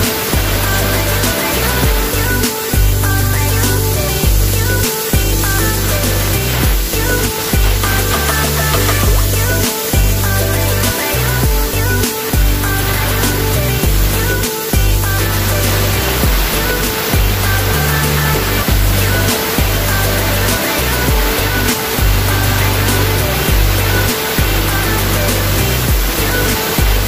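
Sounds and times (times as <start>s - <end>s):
electronic music with heavy bass: 0.0s - 27.0s.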